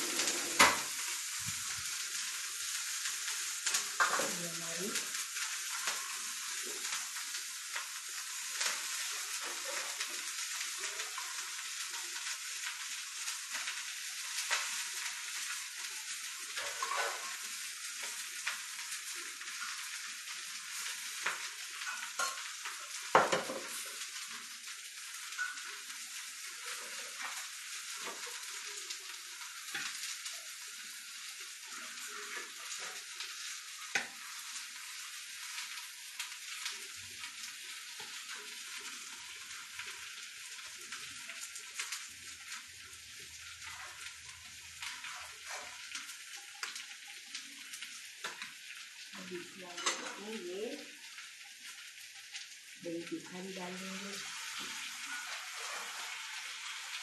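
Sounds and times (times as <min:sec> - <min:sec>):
food sizzling on hot plate: 0:00.0 - 0:57.0.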